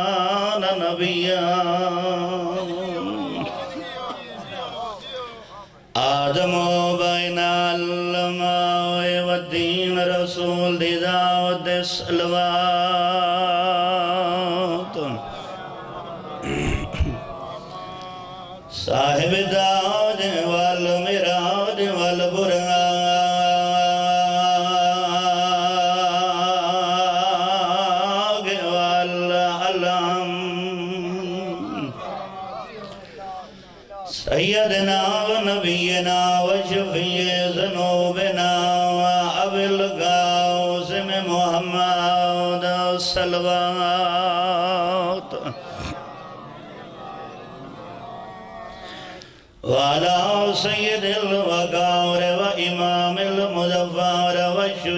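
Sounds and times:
man chanting amplified: 0.0 - 54.9
breathy vocal sound: 14.9 - 17.9, 48.6 - 49.7.

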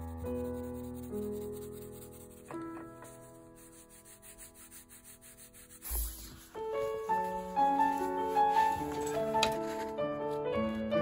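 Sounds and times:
coloured pencil scratching on paper: 0.0 - 9.0
soft piano music: 0.0 - 11.0.

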